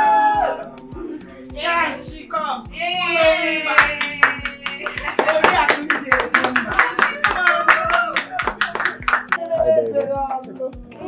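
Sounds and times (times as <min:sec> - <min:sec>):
people cheering: 0:00.0 - 0:00.8, 0:03.0 - 0:09.4
hand clapping: 0:03.8 - 0:09.4.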